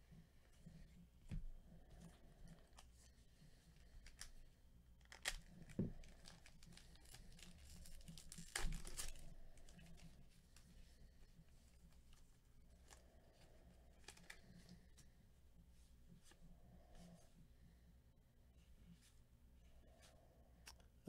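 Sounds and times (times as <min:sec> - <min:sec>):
wrapper tearing and crinkling: 0:05.0 - 0:10.1.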